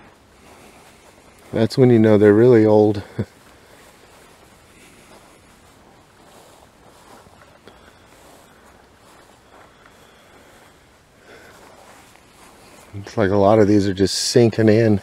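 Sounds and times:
footsteps on dry grass: 0.0s - 15.0s.

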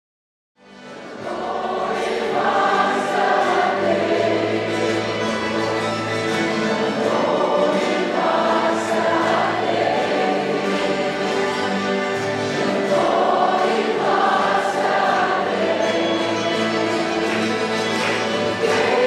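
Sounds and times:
choir singing held chords: 0.8s - 19.0s.

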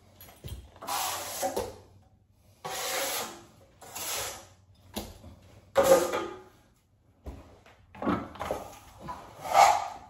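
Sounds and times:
knife scraping compound on drywall: 0.8s - 4.6s, 5.8s - 6.5s, 8.5s - 10.0s.

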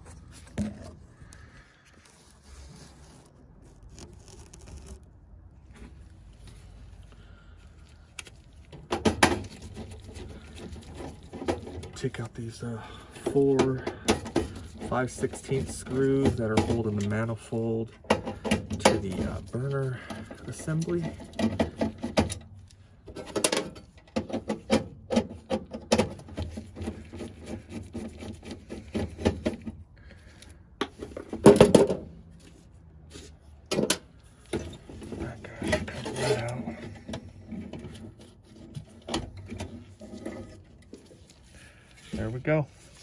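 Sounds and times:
small metal clicks and scraping: 32.4s - 43.0s.

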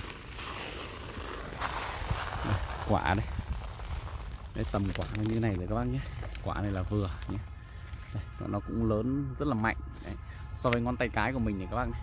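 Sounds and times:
footsteps through undergrowth: 0.0s - 9.0s.

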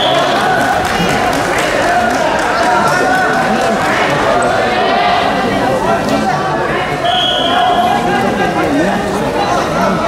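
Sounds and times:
voices echoing in hall: 0.0s - 10.0s.

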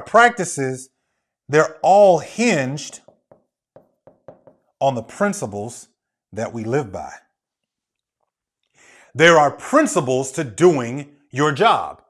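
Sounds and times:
man's voice: 0.0s - 0.8s, 1.5s - 3.0s, 4.8s - 5.8s, 6.4s - 7.2s, 9.2s - 12.0s.

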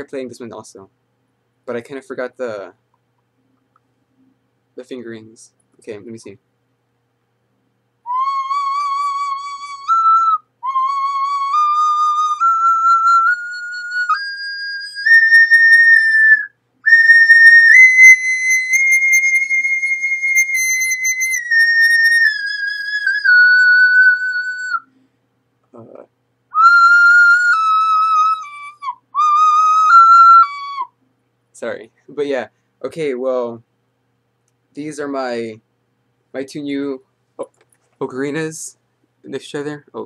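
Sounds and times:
ocarina playing a scale: 8.0s - 24.9s, 26.5s - 30.9s.

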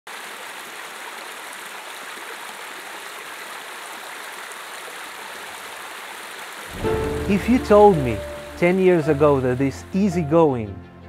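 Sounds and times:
running water rushing: 0.1s - 10.3s.

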